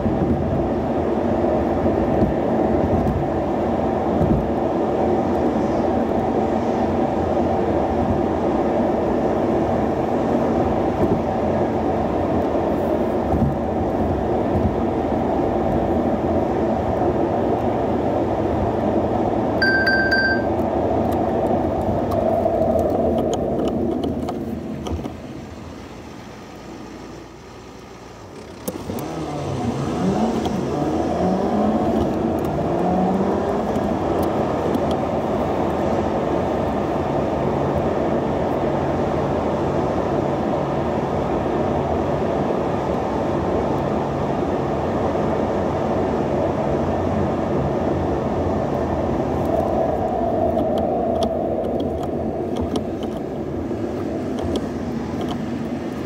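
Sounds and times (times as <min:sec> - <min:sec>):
engine and tyre noise cruising: 0:00.0 - 0:56.0
car accelerating through gears: 0:28.4 - 0:37.1.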